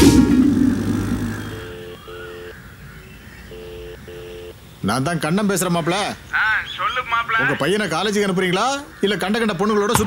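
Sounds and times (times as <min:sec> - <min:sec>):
telephone ringback tone: 0:01.5 - 0:02.6, 0:03.5 - 0:04.6.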